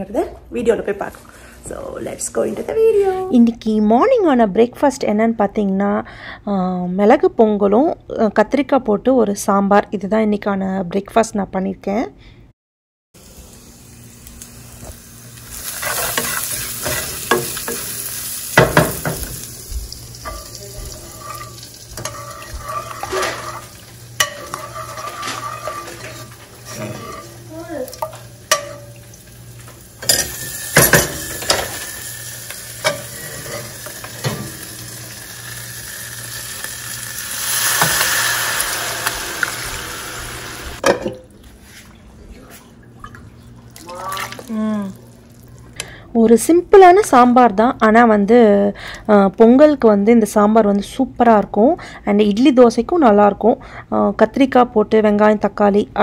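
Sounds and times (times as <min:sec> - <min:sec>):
shallots and chillies sizzling in oil: 0:13.2 - 0:40.8
utensils clacking against pan: 0:15.6 - 0:19.5, 0:20.1 - 0:35.2.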